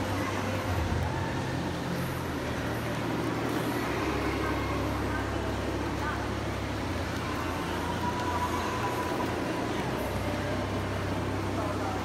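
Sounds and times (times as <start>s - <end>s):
indistinct crowd voices: 0.0s - 12.0s.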